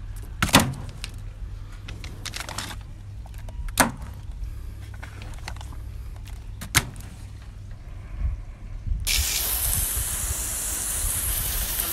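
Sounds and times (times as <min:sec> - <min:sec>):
hose spraying onto wooden deck: 0:09.1 - 0:11.9.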